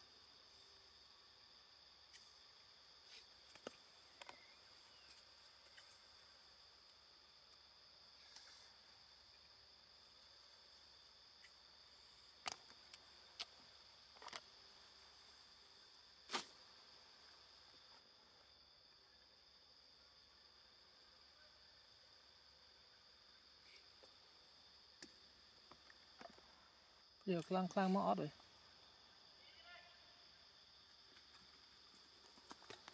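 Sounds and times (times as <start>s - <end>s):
insects chirring: 0.0s - 32.9s.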